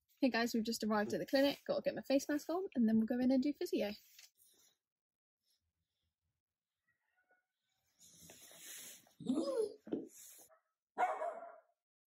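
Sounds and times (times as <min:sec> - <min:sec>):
dog barking: 0:11.0 - 0:11.8.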